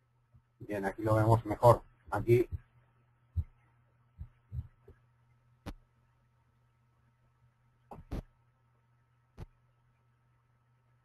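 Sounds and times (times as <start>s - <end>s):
soft low thumps: 2.1s - 2.7s, 3.3s - 3.6s, 4.2s - 5.0s.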